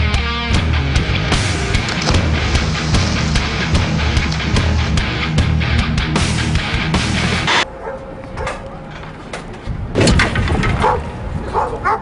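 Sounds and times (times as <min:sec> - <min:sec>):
heavy rock music: 0:00.0 - 0:07.7.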